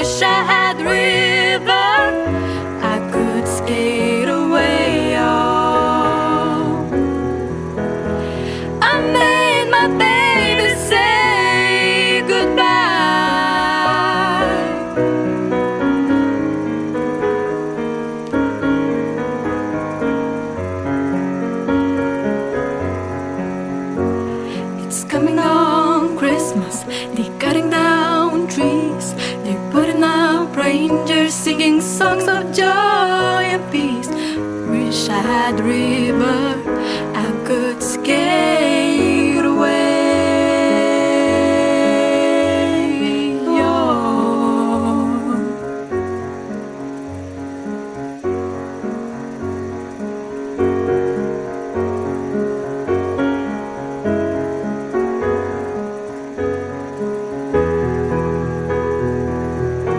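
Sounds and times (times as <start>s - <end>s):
person singing ballad: 0.0s - 7.4s, 8.3s - 15.4s, 24.4s - 46.2s
piano playing slow chords: 0.0s - 59.9s
short hiss: 1.2s - 3.4s, 4.6s - 29.7s, 32.0s - 34.9s, 36.3s - 38.7s.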